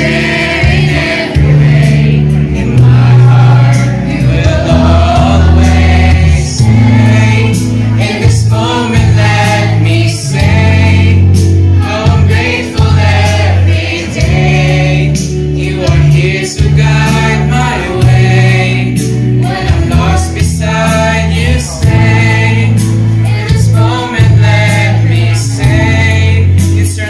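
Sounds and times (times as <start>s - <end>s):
accompaniment with bass notes: 0.0s - 27.0s
children's choir singing: 0.0s - 27.0s.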